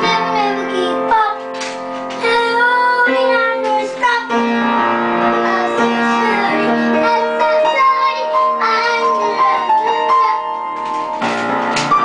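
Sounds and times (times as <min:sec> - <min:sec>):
piano held chords: 0:00.0 - 0:12.0
high wordless voice singing: 0:05.4 - 0:10.6.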